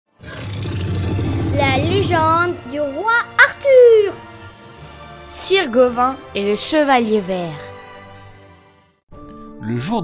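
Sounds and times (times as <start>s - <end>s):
deep roar sound effect: 0.2s - 2.6s.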